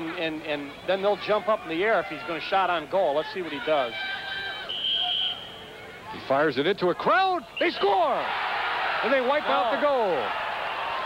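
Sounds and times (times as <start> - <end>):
faint stadium background noise: 0.0 - 11.0
referee's whistle blast: 4.6 - 5.7.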